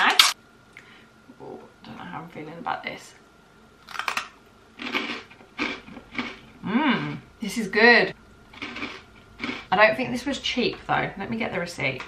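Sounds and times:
breadstick crunching: 0:03.8 - 0:06.4, 0:08.6 - 0:09.7.

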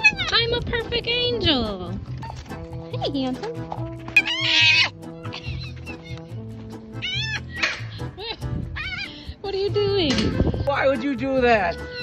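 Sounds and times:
foxes screaming: 0:00.0 - 0:00.4, 0:04.2 - 0:06.2, 0:07.0 - 0:07.7, 0:08.8 - 0:09.2
background music: 0:00.0 - 0:12.0.

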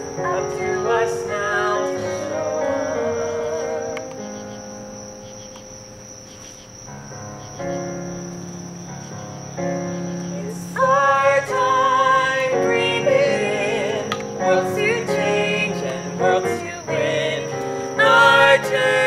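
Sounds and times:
people singing duet: 0:00.0 - 0:04.3, 0:10.4 - 0:19.0
crickets chirring: 0:00.0 - 0:19.0.

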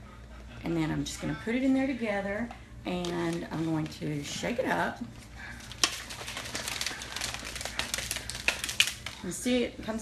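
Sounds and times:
shaker bottle rattling and sloshing: 0:05.6 - 0:09.2.

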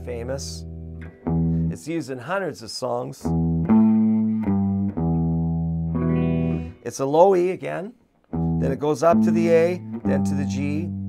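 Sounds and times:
electric guitar blues riff: 0:00.0 - 0:02.0, 0:03.2 - 0:11.0.

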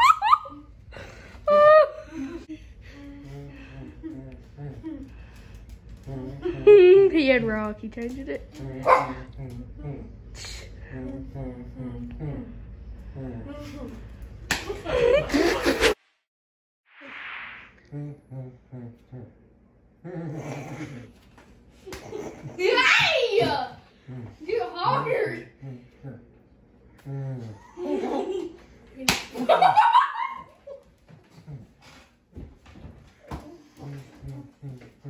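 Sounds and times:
tortilla slapping a face: 0:14.5 - 0:14.8, 0:29.0 - 0:29.5
laughter: 0:14.6 - 0:16.0, 0:27.7 - 0:28.6, 0:29.3 - 0:30.9.

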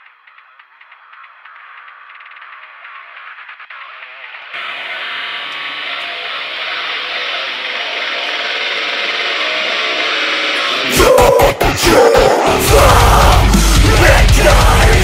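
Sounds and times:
metalcore instrumental backing track: 0:01.0 - 0:15.0.

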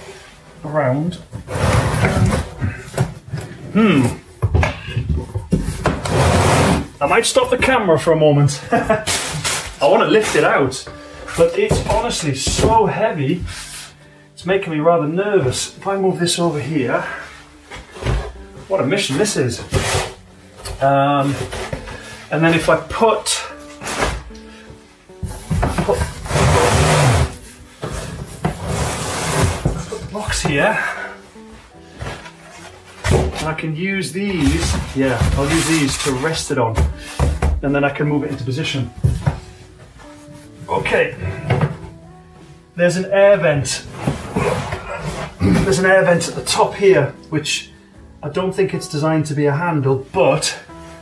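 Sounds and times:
cardboard box scraping on wood: 0:01.3 - 0:02.9, 0:05.5 - 0:07.0, 0:19.6 - 0:20.2, 0:25.3 - 0:31.2, 0:34.4 - 0:36.9, 0:43.8 - 0:45.8
cardboard box knocks and scrapes: 0:34.4 - 0:37.6.

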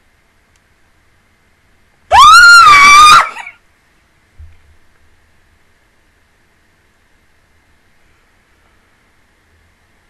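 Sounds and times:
woman screaming with excitement: 0:02.1 - 0:03.6.

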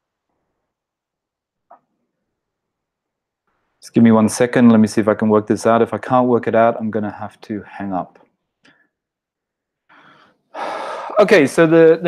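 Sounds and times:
intake of breath: 0:09.9 - 0:11.2
man breathing into microphone: 0:09.9 - 0:11.2.

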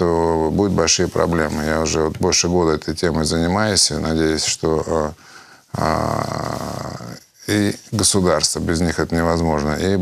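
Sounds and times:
man saying uhh: 0:05.8 - 0:07.3.

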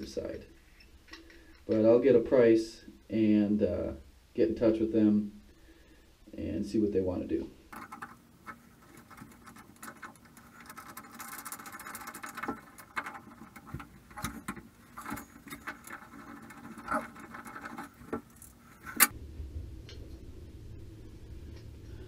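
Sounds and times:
hand tools clicking and scraping metal: 0:07.7 - 0:19.1
rough squeaky grinding: 0:07.7 - 0:19.1.

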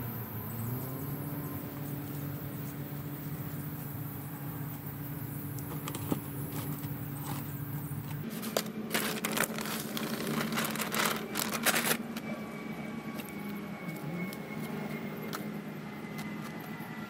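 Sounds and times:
steady low hum: 0:00.0 - 0:17.0
plastic bag crinkling: 0:08.2 - 0:12.4.

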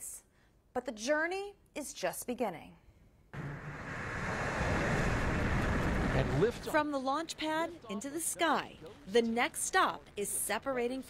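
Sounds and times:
rocket engines roaring: 0:03.4 - 0:06.7.

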